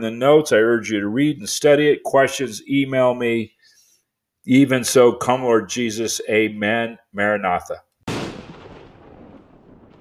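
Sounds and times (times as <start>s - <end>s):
deep boom: 8.1s - 10.0s.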